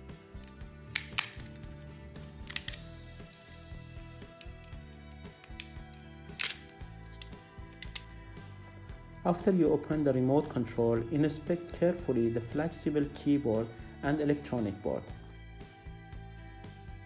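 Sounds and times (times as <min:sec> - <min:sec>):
background music: 0:00.0 - 0:17.0
sharp plastic clicks: 0:00.9 - 0:01.6, 0:02.4 - 0:02.8, 0:04.4 - 0:08.1.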